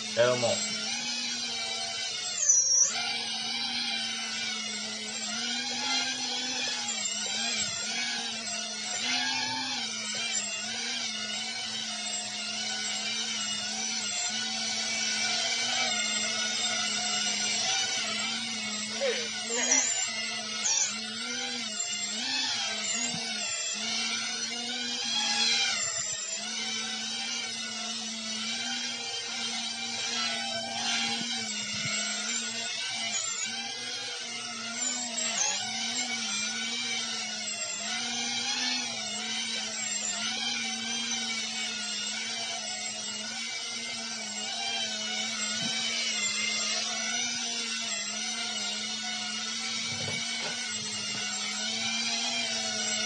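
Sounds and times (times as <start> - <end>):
quadcopter motors whining: 0.0 - 53.0.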